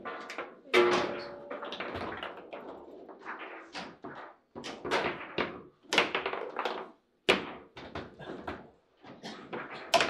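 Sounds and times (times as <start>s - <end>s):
ball knocking plastic figures: 3.8s - 8.6s.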